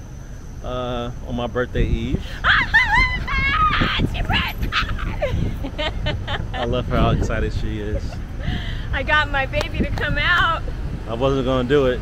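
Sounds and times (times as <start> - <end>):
low street noise: 0.0 - 12.0
woman yelping and squealing: 2.3 - 6.2.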